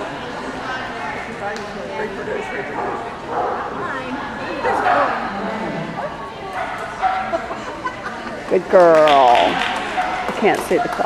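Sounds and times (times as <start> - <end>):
dog barking: 6.6 - 7.4.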